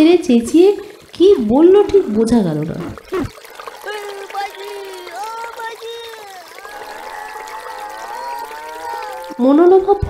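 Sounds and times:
stream water trickling: 0.0s - 10.0s.

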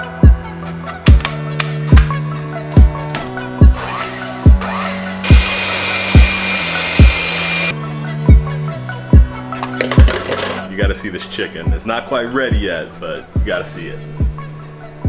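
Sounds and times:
music with steady drum beat: 0.0s - 15.0s
electric hand mixer whirring: 3.8s - 7.7s.

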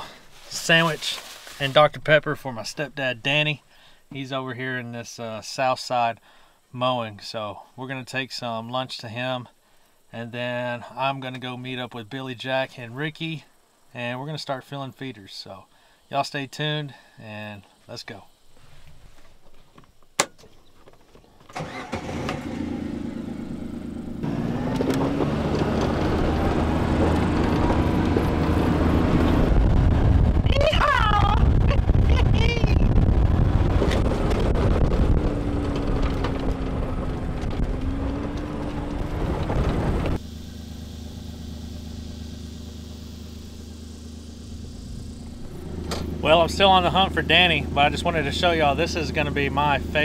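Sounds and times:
vehicle driving over rough ground: 20.6s - 30.4s, 31.4s - 50.0s
utility vehicle engine running: 21.5s - 50.0s.

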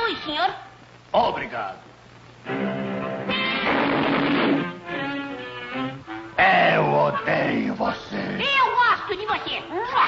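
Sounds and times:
orchestral strings playing: 2.4s - 3.7s, 4.4s - 6.4s.

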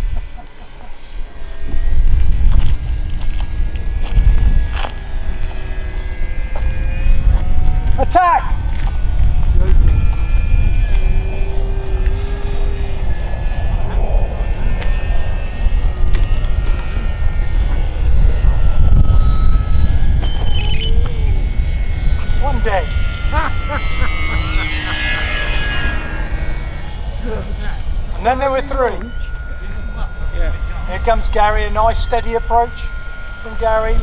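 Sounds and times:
model plane motors whining: 0.0s - 34.0s
wind buffeting microphone: 1.2s - 34.0s.

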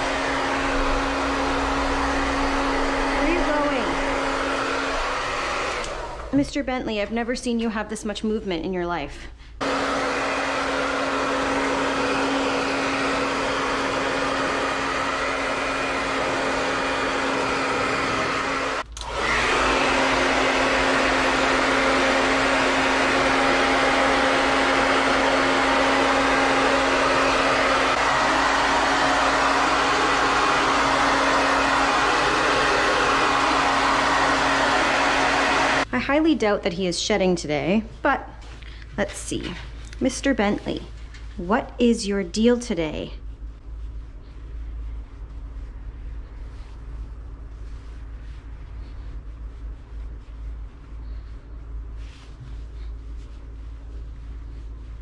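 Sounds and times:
hair dryer whooshing: 0.0s - 7.1s, 9.6s - 36.0s.

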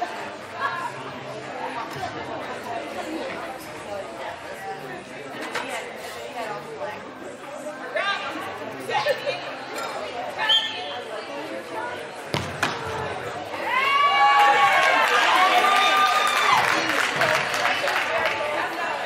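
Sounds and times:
chatter of many voices: 0.0s - 19.0s.

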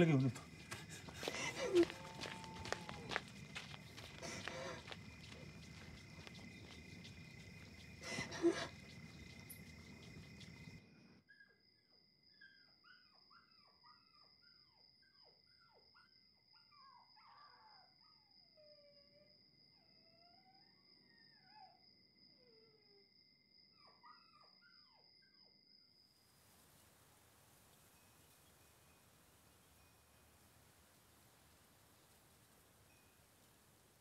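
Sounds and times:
distant dogs yelping and howling: 0.0s - 25.7s.

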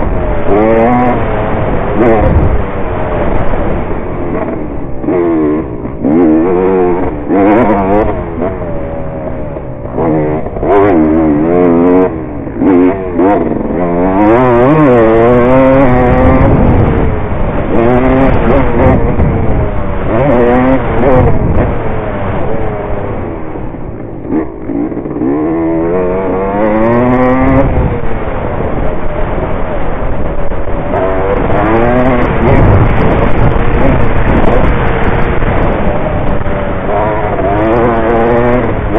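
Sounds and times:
dirt bike engine revving: 0.0s - 38.9s.

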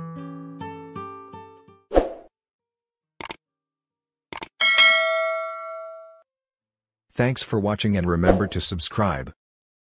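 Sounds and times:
bell ringing: 4.6s - 6.2s.

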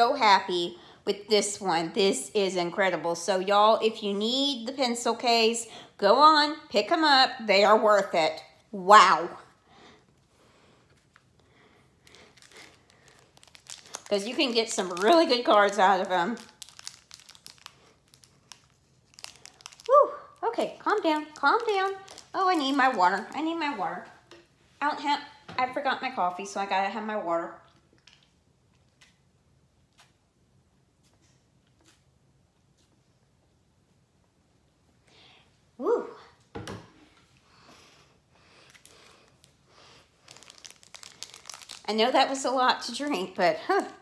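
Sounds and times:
foil wrapper crinkling: 12.0s - 23.8s, 38.6s - 43.0s.

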